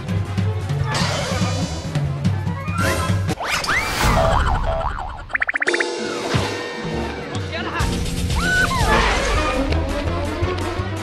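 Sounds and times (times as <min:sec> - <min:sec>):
wobbling tone: 0:03.4 - 0:06.0
sweeping pitch glide: 0:03.4 - 0:06.2.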